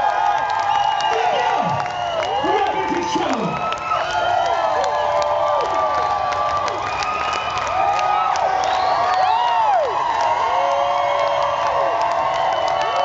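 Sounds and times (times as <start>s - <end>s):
crowd cheering and whooping: 0.0s - 13.0s
scattered claps: 0.0s - 13.0s.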